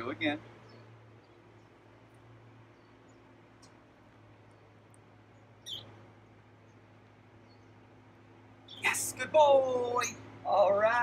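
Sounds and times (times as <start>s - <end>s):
faint low hum: 0.0s - 11.0s
faint high chirps: 5.3s - 6.0s.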